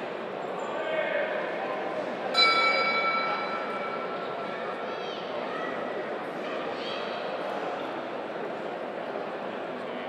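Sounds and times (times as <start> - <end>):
crowd murmur: 0.0 - 10.0
boxing ring bell: 2.4 - 4.4.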